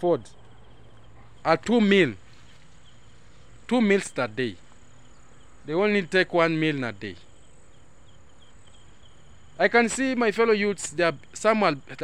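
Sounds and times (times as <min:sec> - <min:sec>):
insects chirping: 0:00.0 - 0:12.0.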